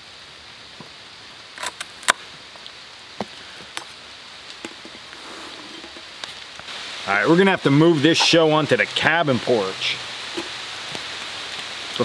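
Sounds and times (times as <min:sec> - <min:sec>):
steady rain hiss: 0:00.0 - 0:12.0.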